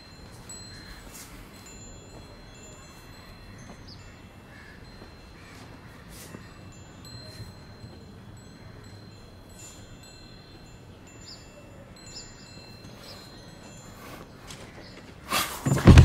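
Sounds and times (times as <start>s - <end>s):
metal wind chime ringing: 0.0s - 16.0s.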